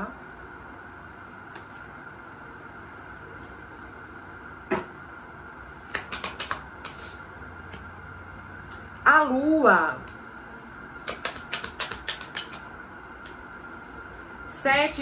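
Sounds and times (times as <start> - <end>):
cards clicking while shuffled: 5.9 - 7.0, 11.0 - 13.4.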